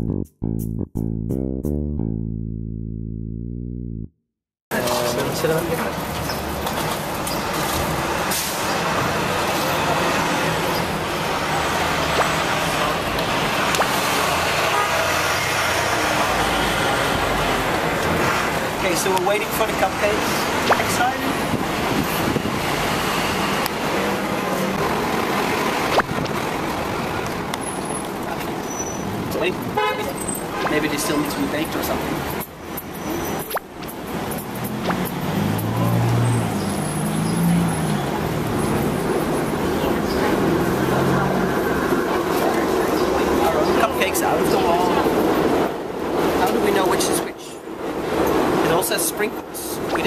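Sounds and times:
street traffic rumble: 0:04.7 - 0:50.0
car horn tooting: 0:14.6 - 0:15.2, 0:29.8 - 0:30.8.

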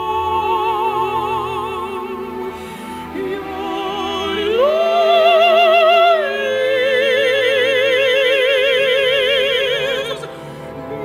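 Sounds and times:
women singing operatic duet: 0:00.0 - 0:11.0.

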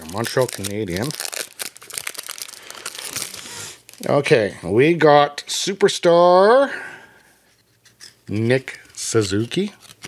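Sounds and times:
wrapper crinkling: 0:00.0 - 0:04.2.

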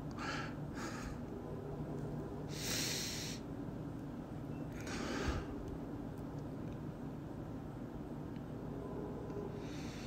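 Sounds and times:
sniffling breaths: 0:00.1 - 0:01.3, 0:04.8 - 0:05.6, 0:09.6 - 0:10.0.

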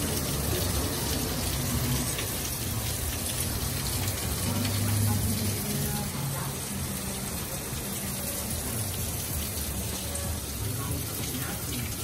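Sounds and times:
heavy rain falling: 0:00.0 - 0:12.0.

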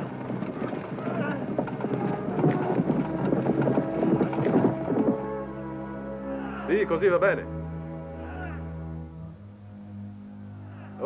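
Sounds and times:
horse hooves clip-clopping: 0:00.0 - 0:05.8.

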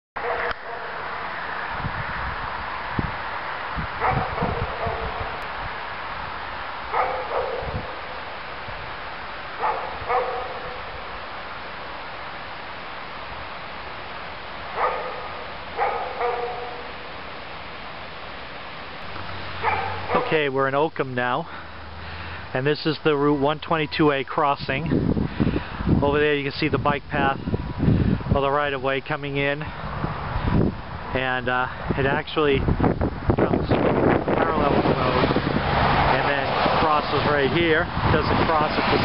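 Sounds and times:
dog barking: 0:00.2 - 0:01.0, 0:04.0 - 0:05.4, 0:06.9 - 0:08.1, 0:09.6 - 0:10.9, 0:14.8 - 0:16.9, 0:19.6 - 0:20.4
steady hiss: 0:05.4 - 0:23.3.

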